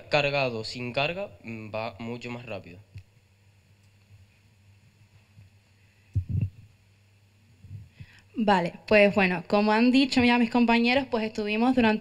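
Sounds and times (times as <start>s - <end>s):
faint low hum: 0.0s - 12.0s
microphone handling thumps: 4.1s - 6.8s, 7.5s - 8.2s.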